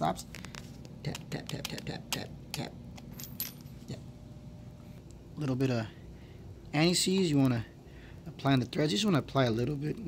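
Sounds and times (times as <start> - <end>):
metal parts clinking on concrete: 3.0 - 3.9.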